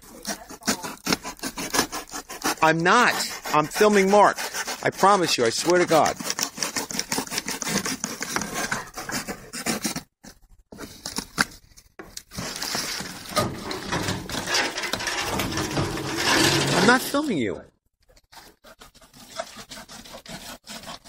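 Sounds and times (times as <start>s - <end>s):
blade sawing through cardboard: 0.0s - 10.1s, 12.3s - 17.0s, 18.3s - 21.0s
cardboard box rustling: 12.2s - 15.0s.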